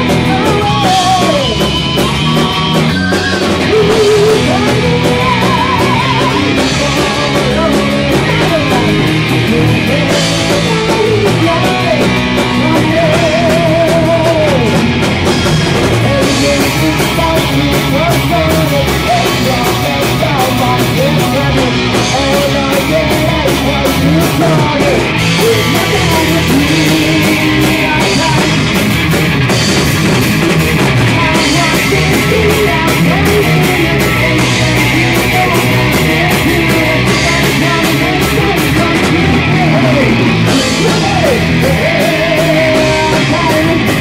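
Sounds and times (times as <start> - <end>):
rock band playing heavy metal: 0.0 - 44.0.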